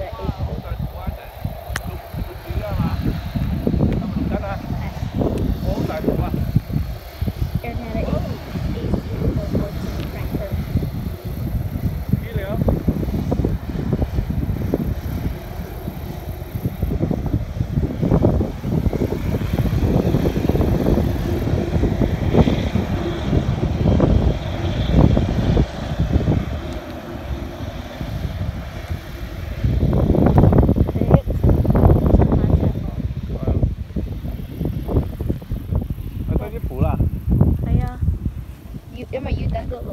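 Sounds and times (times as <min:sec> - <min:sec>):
distant jet engines: 0:00.0 - 0:39.9
wind buffeting microphone: 0:00.0 - 0:39.9.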